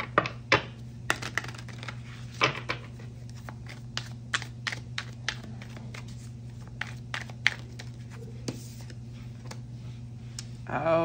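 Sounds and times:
cards being shuffled: 1.1 - 9.6.

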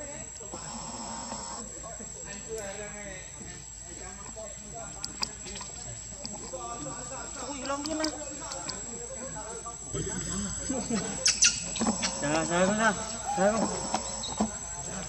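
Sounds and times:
chattering voices and calls: 0.0 - 15.0.

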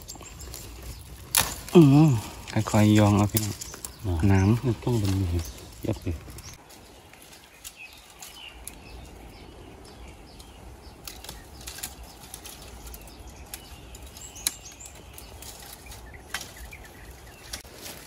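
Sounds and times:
dry twigs and leaves crackling: 0.0 - 18.0
twigs snapping: 0.0 - 18.0.

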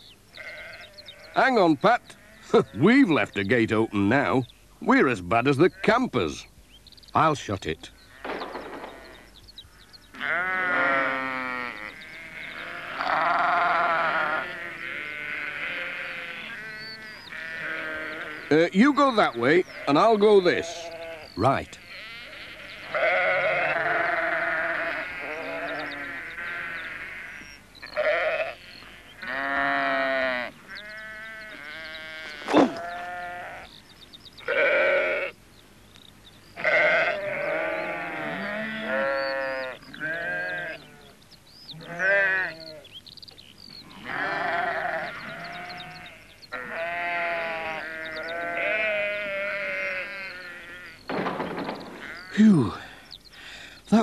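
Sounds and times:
sheep bleating: 0.4 - 2.8, 10.1 - 18.7, 19.4 - 33.8, 34.4 - 35.4, 36.6 - 41.2, 41.8 - 42.8, 43.8 - 51.2, 51.8 - 53.1.

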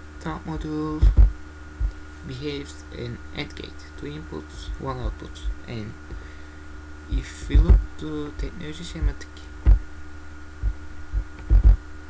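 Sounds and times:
steady electrical hum: 0.0 - 12.0
dull low thumps: 0.6 - 2.1, 5.4 - 6.2, 7.1 - 8.0, 9.0 - 10.0, 10.6 - 11.9.

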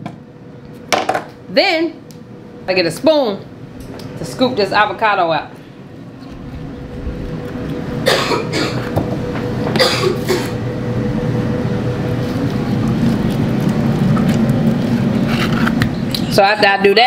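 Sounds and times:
appliance fan whirring: 0.0 - 17.0
person coughing: 8.0 - 9.0, 9.7 - 10.6.

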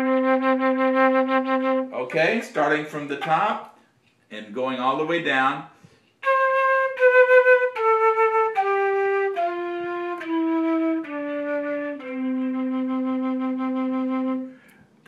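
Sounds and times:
flute playing descending scale: 0.0 - 2.0, 6.2 - 14.6.

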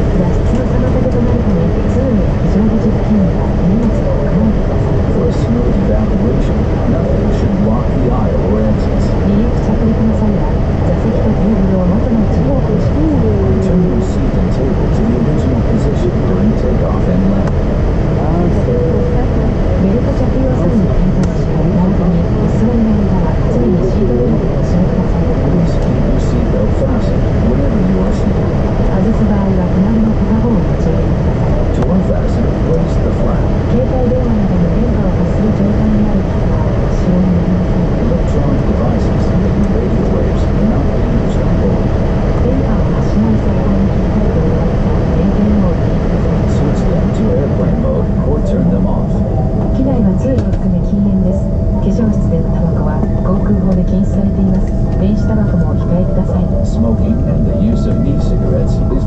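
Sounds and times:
airliner cabin rumble and hum: 0.0 - 59.0
passengers talking: 0.0 - 59.0.

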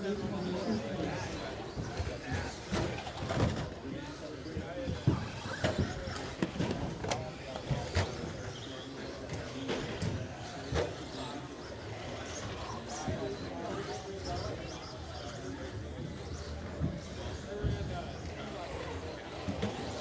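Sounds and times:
murmur of voices: 0.0 - 20.0
radio-controlled trucks racing: 0.0 - 20.0.

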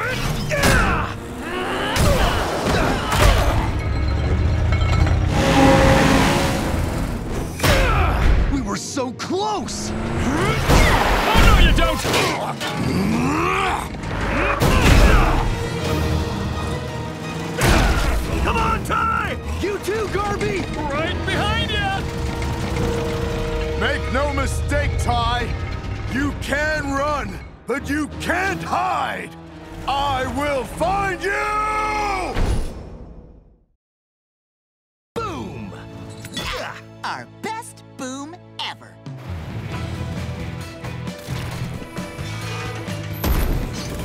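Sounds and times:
dramatic music: 0.0 - 33.4, 35.2 - 44.0
crashing and rumbling effects: 19.9 - 27.6.

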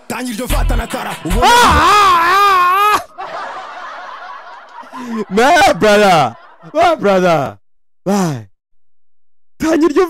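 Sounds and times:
song playing: 0.0 - 2.0.

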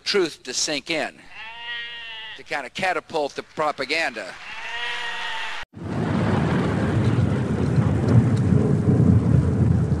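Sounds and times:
thunder rumbling: 5.8 - 10.0.

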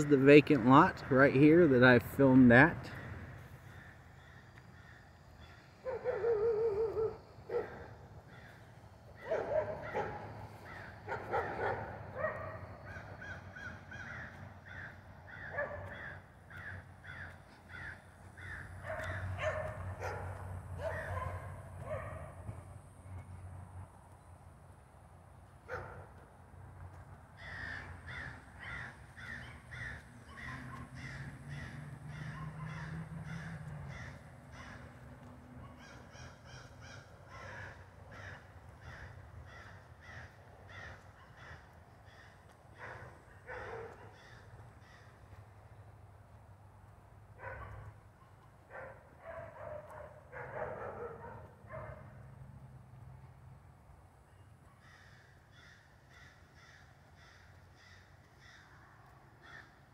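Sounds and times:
crows cawing: 2.9 - 19.4, 27.3 - 35.2, 35.8 - 45.5, 54.8 - 59.9.

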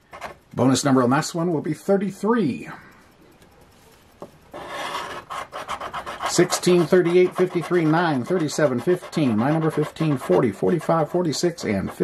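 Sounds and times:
scraper rasping lottery ticket: 4.6 - 12.0.

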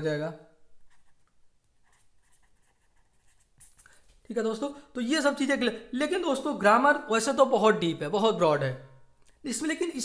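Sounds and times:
pen scratching on paper: 0.8 - 4.0.

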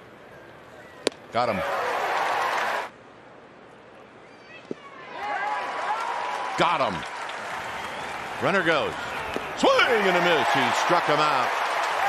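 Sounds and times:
crowd cheering: 1.5 - 2.9, 4.8 - 12.0.

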